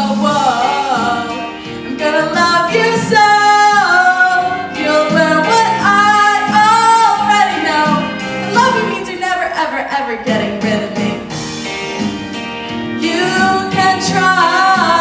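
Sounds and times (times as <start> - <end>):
woman singing into microphone: 0.0 - 11.2, 13.0 - 15.0
instrumental accompaniment: 0.0 - 15.0.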